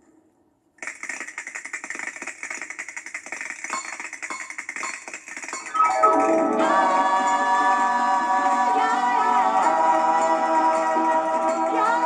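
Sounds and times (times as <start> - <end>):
castanets clattering: 0.8 - 6.4.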